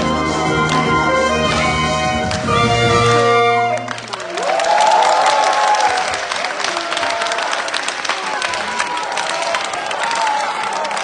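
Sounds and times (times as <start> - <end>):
saxophone ensemble low held note: 0.0 - 4.2
audience applauding and cheering: 0.0 - 11.0
high whoops: 4.3 - 7.5.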